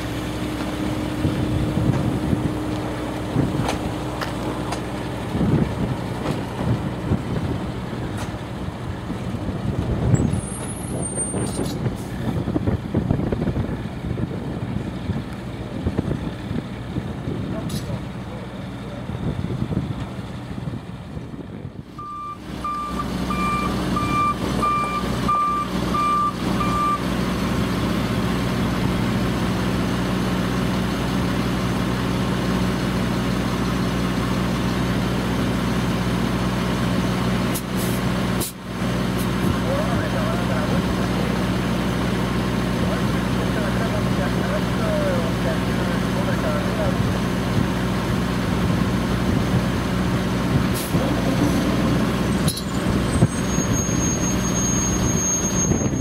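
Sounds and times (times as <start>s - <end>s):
truck engine hum: 0.0s - 56.0s
backup alarm beeping: 22.0s - 27.0s.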